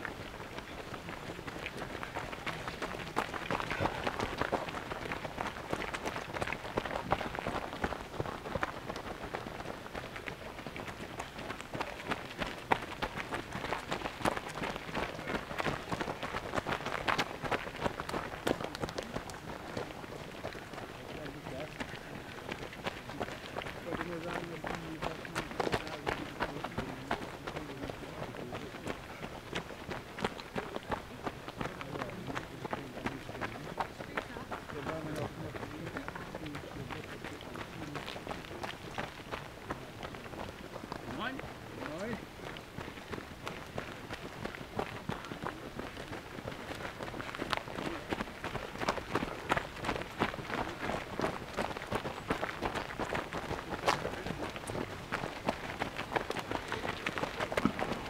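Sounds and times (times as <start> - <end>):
runners' footsteps on gravel: 0.0 - 58.0.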